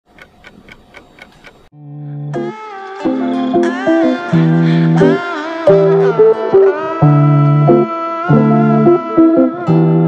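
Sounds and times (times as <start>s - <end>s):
steady ticking: 0.0s - 1.7s.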